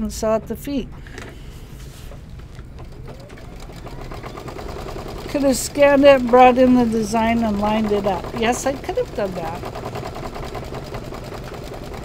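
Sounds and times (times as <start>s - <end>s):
embroidery machine needle strokes: 1.0s - 12.0s
machine whine: 1.0s - 12.0s.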